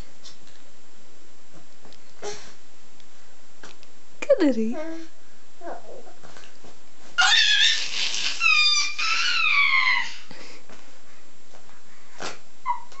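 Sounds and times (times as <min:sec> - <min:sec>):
baby squealing happily: 0:07.2 - 0:10.3, 0:12.7 - 0:13.0.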